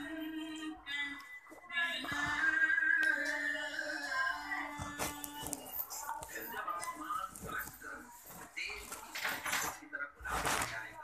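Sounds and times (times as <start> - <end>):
indistinct voices: 0.0 - 11.0.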